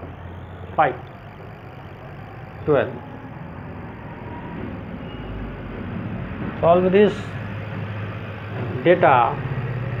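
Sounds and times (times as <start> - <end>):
low engine-like hum: 0.0 - 10.0.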